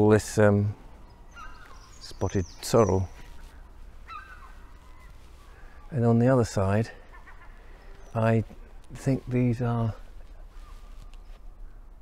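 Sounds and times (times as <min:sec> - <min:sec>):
outdoor background noise: 0:00.0 - 0:12.0
bird call: 0:01.0 - 0:06.0, 0:07.0 - 0:08.3.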